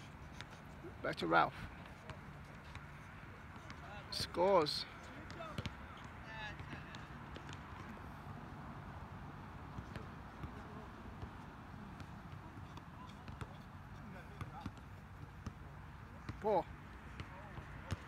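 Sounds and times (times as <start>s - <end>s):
distant players' voices: 0.0s - 18.0s
basketball bouncing on hard court: 5.2s - 8.0s, 9.7s - 10.6s, 17.1s - 18.0s.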